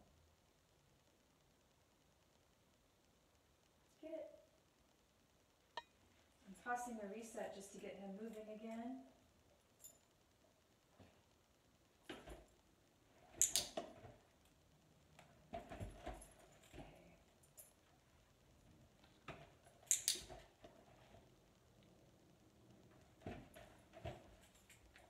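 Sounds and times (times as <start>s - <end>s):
sharp bright clicks: 13.4s - 13.8s, 19.8s - 20.4s
dog paw steps: 22.9s - 25.0s.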